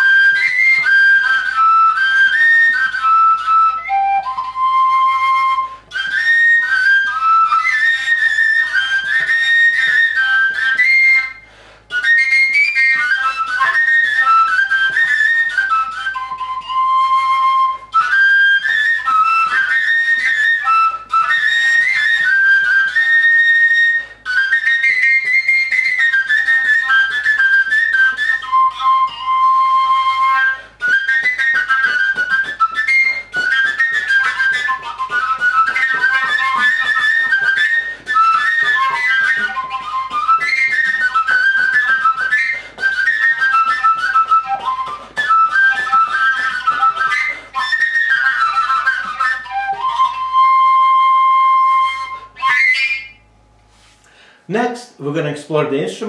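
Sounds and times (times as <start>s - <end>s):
wooden overtone flute melody: 0.0s - 55.1s.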